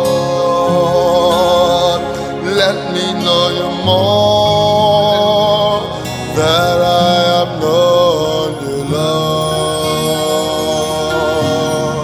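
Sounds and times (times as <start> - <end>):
keyboard chords: 0.0 - 12.0
man singing gospel song: 0.0 - 12.0.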